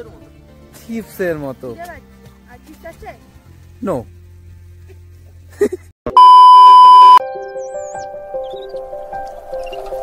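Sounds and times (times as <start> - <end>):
background music with held notes: 0.0 - 5.7, 7.2 - 10.0
high electronic beep: 6.1 - 8.0.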